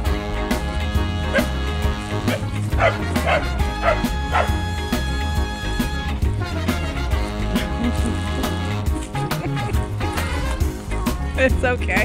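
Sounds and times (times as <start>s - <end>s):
background music: 0.0s - 12.0s
dog barking: 1.3s - 1.5s, 2.3s - 4.6s.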